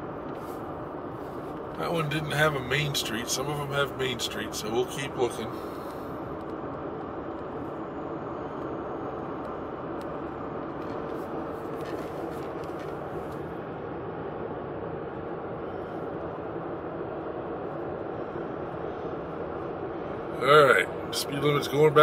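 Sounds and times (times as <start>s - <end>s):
car road and engine noise: 0.0s - 22.0s
faint steady hum: 0.0s - 22.0s.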